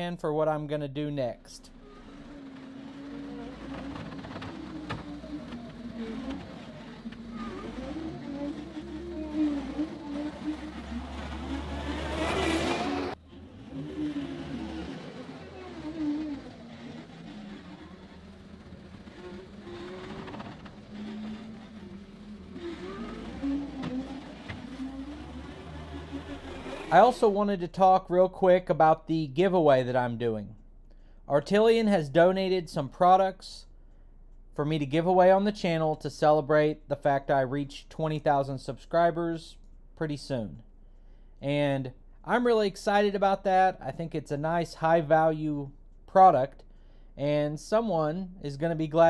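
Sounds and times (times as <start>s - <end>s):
loader diesel engine under load: 0.9s - 27.6s.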